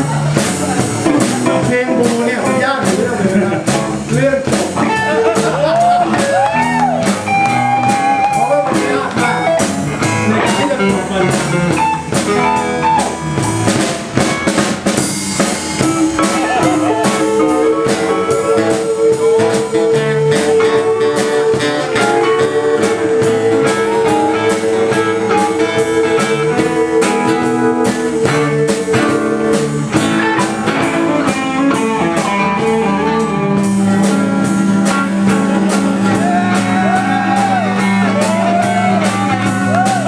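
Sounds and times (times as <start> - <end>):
blues band playing: 0.0 - 40.0.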